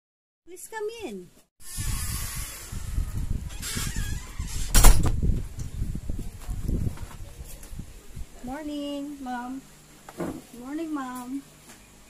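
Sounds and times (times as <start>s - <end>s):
rustling movement: 1.7s - 8.6s
wooden door swinging open: 3.5s - 5.2s
door shutting knock: 3.6s - 5.2s.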